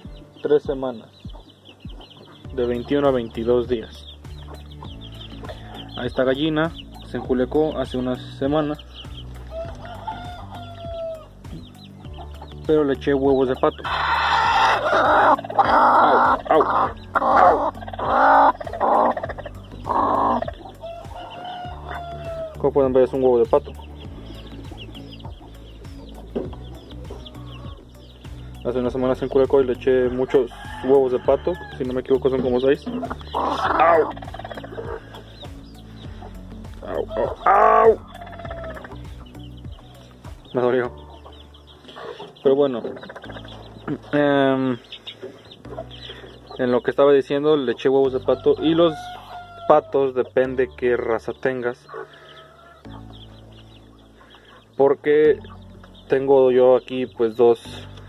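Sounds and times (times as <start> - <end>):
chickens clucking: 0.0 - 58.0
long drawn-out chicken call: 9.5 - 11.3, 13.8 - 22.6, 48.3 - 50.0, 51.9 - 52.9
hen harsh calls: 13.8 - 22.6, 30.2 - 40.1.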